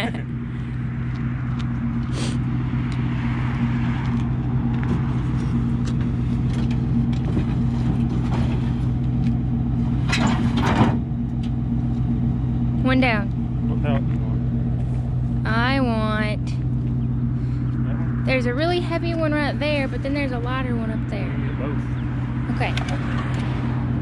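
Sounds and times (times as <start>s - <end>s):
pickup truck engine idling: 0.0s - 24.0s.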